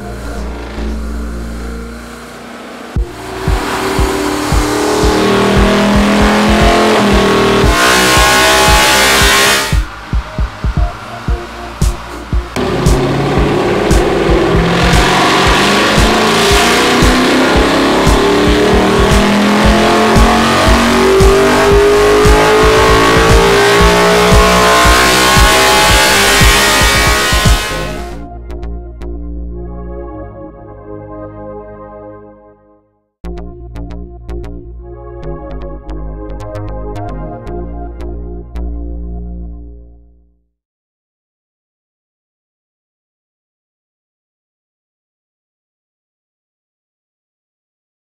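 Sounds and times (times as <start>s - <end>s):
car engine revving: 0.0s - 28.2s.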